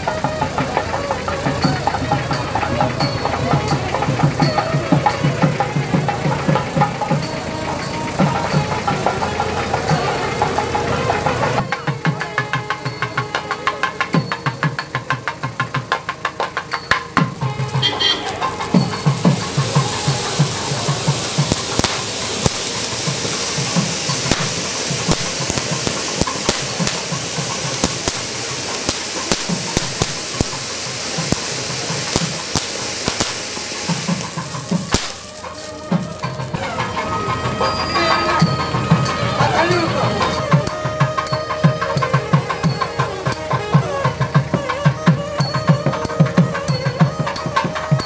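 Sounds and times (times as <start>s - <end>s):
drum beats: 0.0s - 48.0s
firework fountain hissing and crackling: 0.0s - 48.0s.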